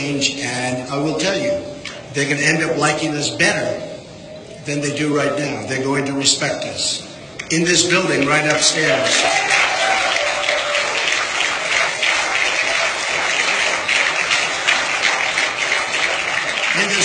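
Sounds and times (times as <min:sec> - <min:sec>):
voices: 0:00.0 - 0:09.6
audience applause: 0:08.5 - 0:17.0.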